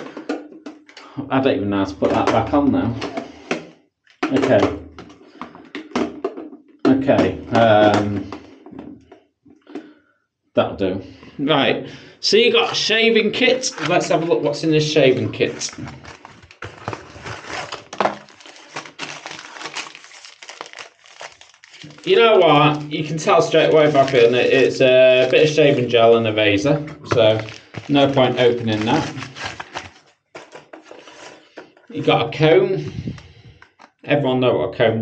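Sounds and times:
plastic wrapper crinkling: 13.6s - 14.2s, 15.4s - 26.1s, 27.1s - 31.3s.

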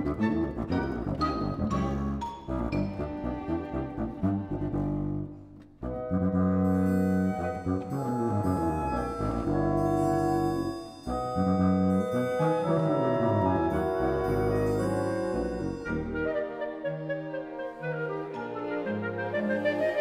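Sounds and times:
orchestral winds and brass chords: 0.0s - 20.0s.

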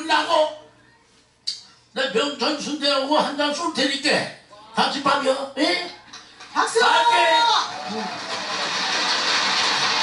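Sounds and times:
large crowd applauding: 6.4s - 10.0s.

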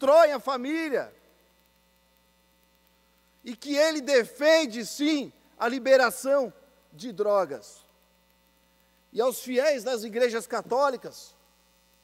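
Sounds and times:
man speaking: 0.0s - 1.2s, 3.4s - 7.9s, 9.1s - 11.4s
faint electrical hum: 0.0s - 12.0s.

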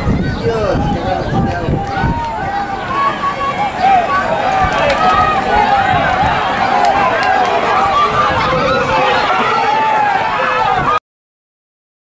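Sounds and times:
spectators shouting: 0.0s - 11.0s.

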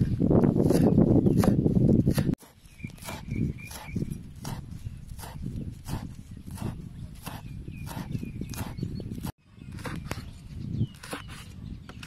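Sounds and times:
knife chopping on wooden board: 0.6s - 10.2s.

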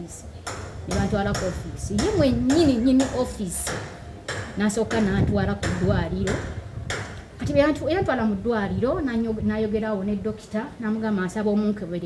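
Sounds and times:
woman talking: 0.0s - 0.3s, 0.9s - 3.8s, 4.6s - 6.5s, 7.4s - 12.0s
sharp knock: 0.5s - 7.2s.

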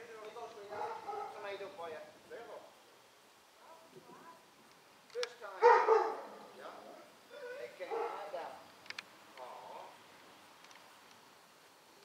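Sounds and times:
dog barking and whining: 0.7s - 1.4s, 5.6s - 6.5s, 7.4s - 8.4s.

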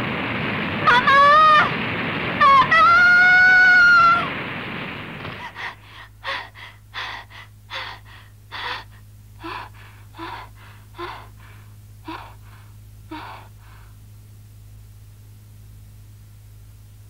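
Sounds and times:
boy panting: 5.4s - 13.9s.

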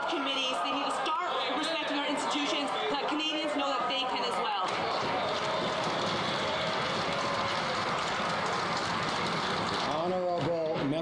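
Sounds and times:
crowd applauding: 0.0s - 10.8s.

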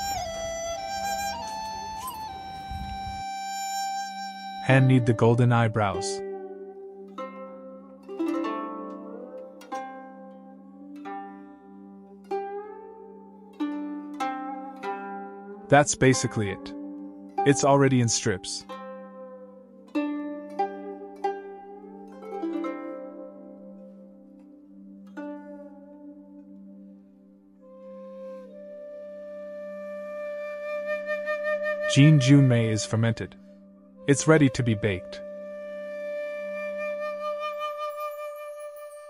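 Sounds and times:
plucked string notes: 0.0s - 28.8s, 31.8s - 36.6s.

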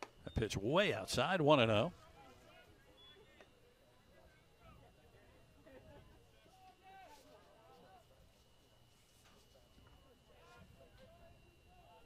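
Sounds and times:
faint distant voices chattering: 0.0s - 12.0s.

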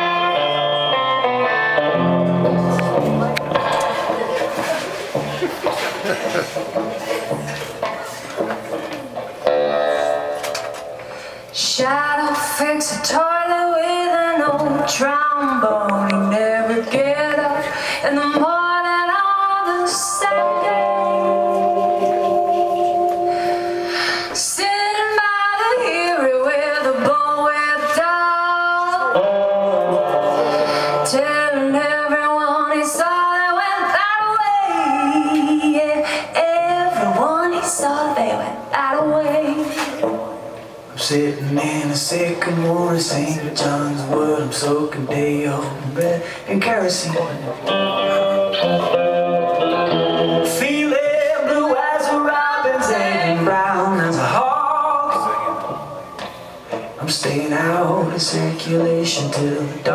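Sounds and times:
electric guitar chord ringing: 0.0s - 4.4s, 9.4s - 11.3s, 47.6s - 50.9s
person singing: 11.4s - 40.2s, 41.0s - 56.0s, 56.7s - 59.9s
woman singing long held notes: 30.4s - 40.0s.

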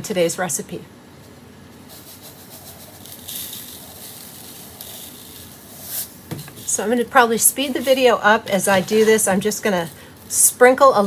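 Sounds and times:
granules trickling into cup: 1.9s - 6.8s.

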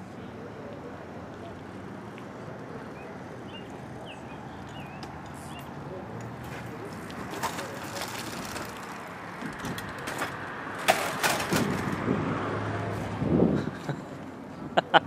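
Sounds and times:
voices calling out: 0.0s - 11.8s
outdoor background noise: 0.0s - 15.0s
wheelchair crashing on pavement: 7.2s - 12.1s.

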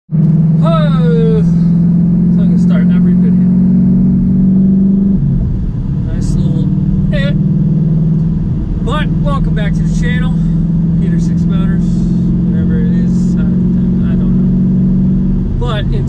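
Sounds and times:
car engine and road noise: 0.1s - 16.0s
man speaking: 0.6s - 1.6s, 2.4s - 3.5s, 6.0s - 7.4s, 8.8s - 14.4s, 15.6s - 16.0s.

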